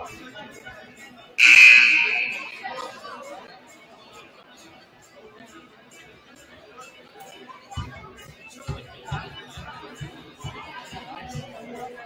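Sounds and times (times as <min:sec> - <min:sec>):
scoreboard horn blaring: 0:01.4 - 0:02.9.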